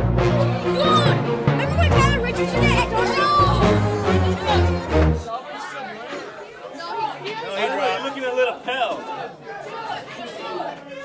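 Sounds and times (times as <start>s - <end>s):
people talking and chattering: 0.0s - 11.0s.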